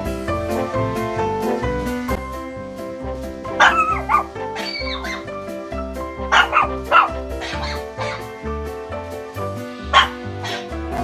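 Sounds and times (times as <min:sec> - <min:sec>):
background music with steady beat: 0:00.0 - 0:11.0
dog barking and yipping: 0:03.5 - 0:08.4, 0:09.9 - 0:10.7.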